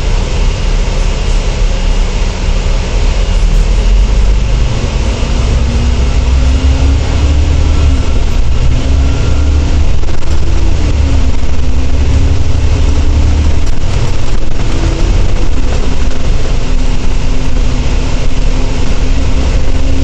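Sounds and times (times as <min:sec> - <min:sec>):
bus diesel engine accelerating: 0:00.0 - 0:20.0.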